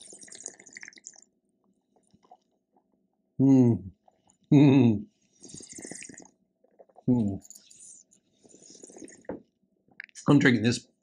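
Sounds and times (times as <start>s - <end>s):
wet mouth sounds: 0.0s - 1.2s, 5.3s - 9.4s
breathing: 7.8s - 9.3s.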